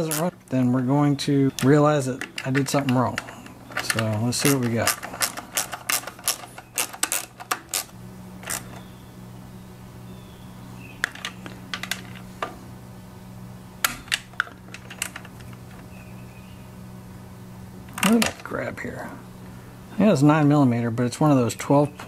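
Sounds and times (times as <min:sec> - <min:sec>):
socket ratchet clicking: 0:01.6 - 0:08.8.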